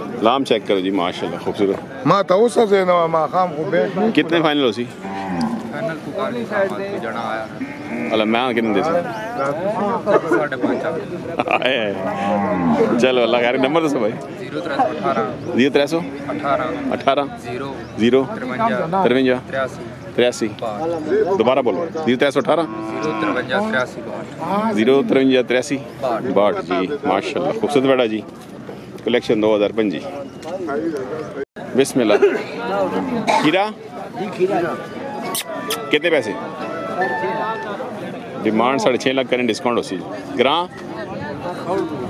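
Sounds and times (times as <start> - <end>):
cow mooing: 5.0 - 5.9, 7.6 - 8.3, 11.9 - 13.0, 22.6 - 23.5.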